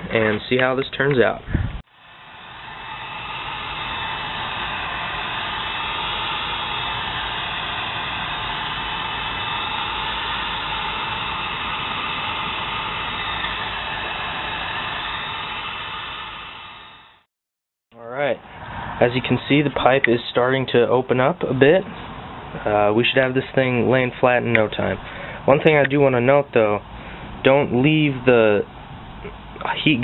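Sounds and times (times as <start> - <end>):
heat gun blowing air: 1.8 - 17.2.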